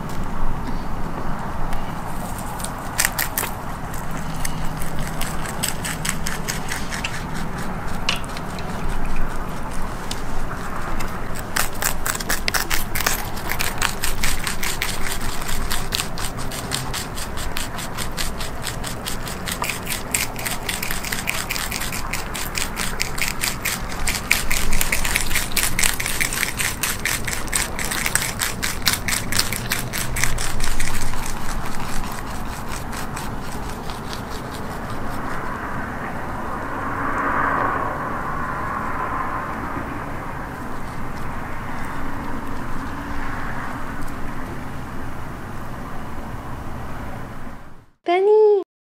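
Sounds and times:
rabbits crunching kale stems: 0:01.7 - 0:35.9, 0:40.5 - 0:44.5.

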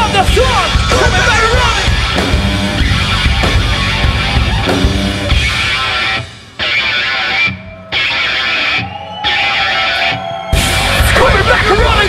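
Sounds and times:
rock band playing guitar riff: 0:00.0 - 0:12.0.

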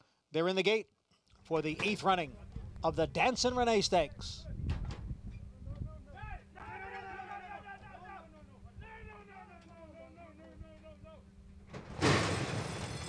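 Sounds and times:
steady low hum: 0:01.5 - 0:12.0.

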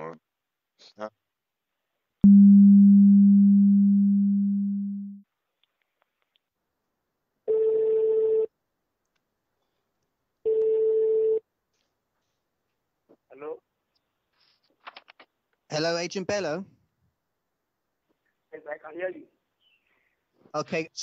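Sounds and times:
low steady phone tone: 0:02.2 - 0:05.2, 0:07.5 - 0:08.5, 0:10.4 - 0:11.4
telephone ringback tones: 0:07.5 - 0:08.5, 0:10.5 - 0:11.4.

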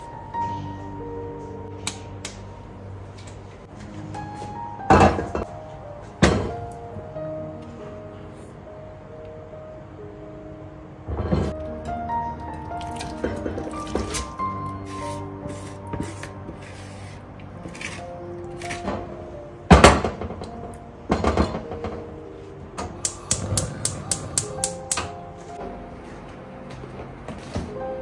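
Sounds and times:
background music: 0:00.0 - 0:28.0.

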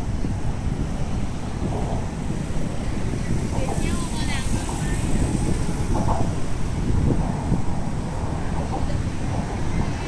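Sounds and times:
car traffic rumble: 0:00.0 - 0:10.0
wind buffeting microphone: 0:00.0 - 0:10.0.

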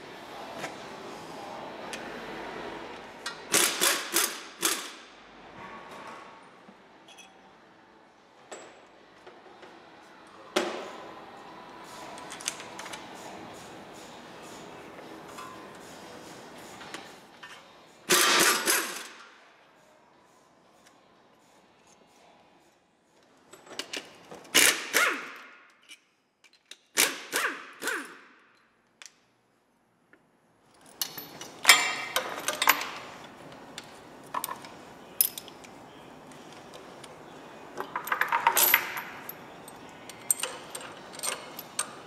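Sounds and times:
chain and tools clinking on metal: 0:07.0 - 0:07.4, 0:30.7 - 0:33.2, 0:34.2 - 0:35.8, 0:37.8 - 0:42.0
chain links rattling: 0:37.9 - 0:42.0.

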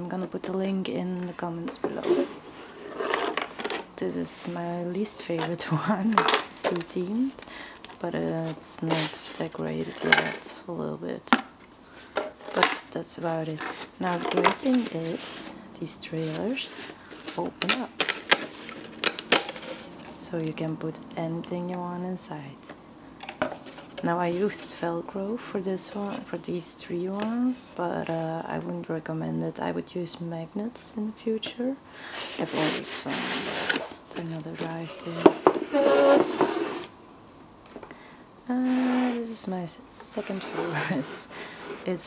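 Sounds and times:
paper rustling and scraping: 0:08.3 - 0:10.0, 0:13.3 - 0:15.5, 0:16.1 - 0:20.2, 0:32.1 - 0:36.9, 0:40.2 - 0:42.0.

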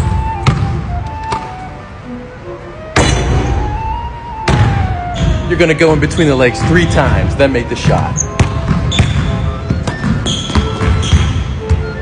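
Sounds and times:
basketball dribbling on wooden floor: 0:07.9 - 0:11.9.

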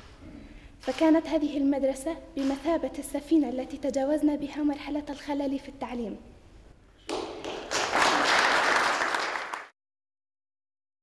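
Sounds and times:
guests applauding: 0:07.1 - 0:09.8.

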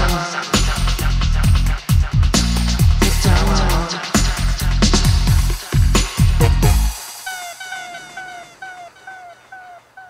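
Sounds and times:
echoing synth tone: 0:06.9 - 0:10.0.

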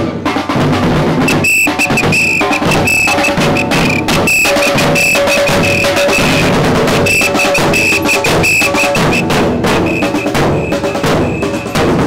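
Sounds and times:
marching drums: 0:00.0 - 0:12.0
high piping melody: 0:01.3 - 0:12.0.

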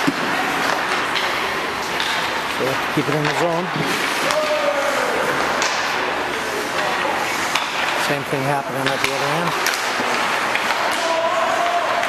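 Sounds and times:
skates scraping on ice: 0:00.0 - 0:12.0.

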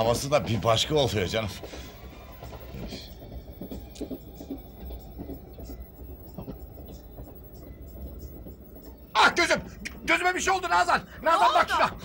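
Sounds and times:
train rumble: 0:00.0 - 0:12.0.

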